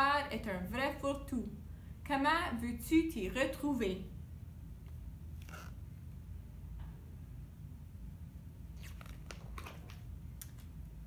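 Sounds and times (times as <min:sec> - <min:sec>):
book page turning: 0:08.8 - 0:10.6.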